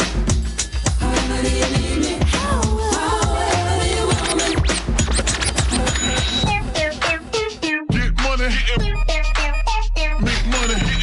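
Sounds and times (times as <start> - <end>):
hip hop bass beat: 0.0 - 11.0
record scratching: 3.1 - 7.6.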